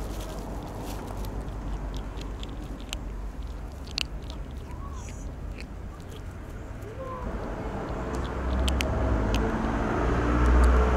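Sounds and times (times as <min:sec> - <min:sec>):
vehicle engine rumbling: 0:00.0 - 0:10.9.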